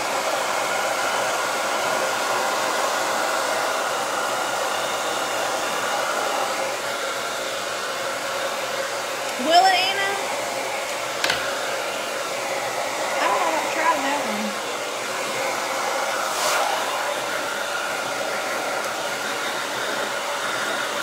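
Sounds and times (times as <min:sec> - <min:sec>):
hair dryer whooshing hum: 0:00.0 - 0:21.0.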